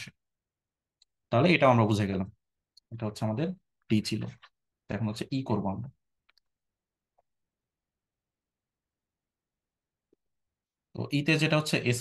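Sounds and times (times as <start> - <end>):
person speaking: 1.0 - 6.1.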